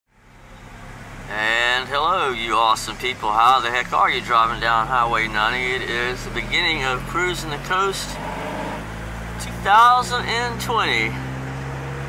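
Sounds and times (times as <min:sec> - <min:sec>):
car cabin driving hum: 0:00.2 - 0:12.0
person speaking: 0:01.3 - 0:08.2, 0:09.4 - 0:11.2.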